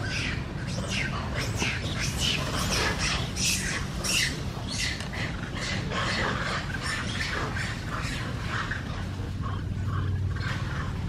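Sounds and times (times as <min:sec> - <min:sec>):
baby monkey screeching: 0:00.0 - 0:08.2.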